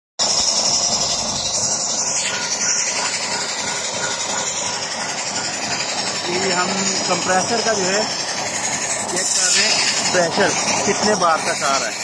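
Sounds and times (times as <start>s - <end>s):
air compressor and engine running: 0.2s - 12.0s
loud even hiss: 0.2s - 12.0s.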